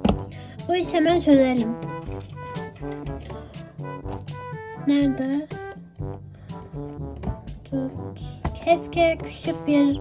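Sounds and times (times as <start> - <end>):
instrumental background music: 0.0 - 10.0.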